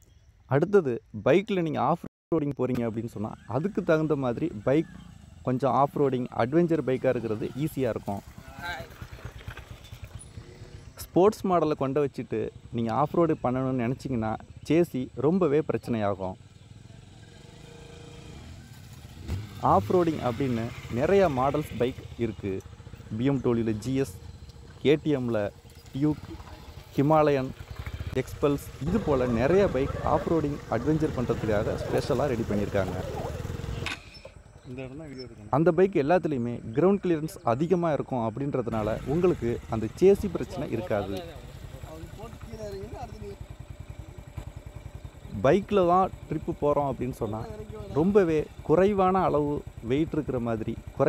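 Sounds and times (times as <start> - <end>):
motorcycle engine running: 3.1 - 34.9, 38.7 - 51.0.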